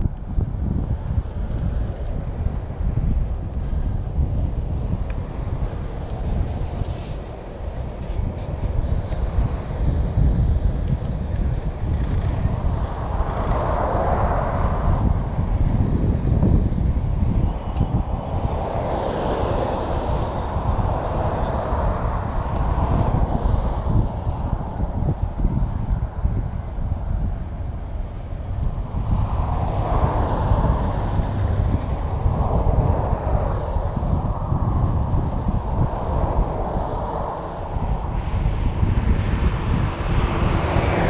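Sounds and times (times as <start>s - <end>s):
cars passing on highway: 0.0s - 41.0s
wind buffeting microphone: 0.0s - 41.0s.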